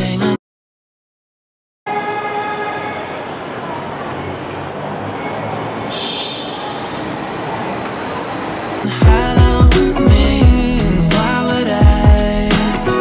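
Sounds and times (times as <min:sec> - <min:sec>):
city street noise: 0:01.9 - 0:13.0.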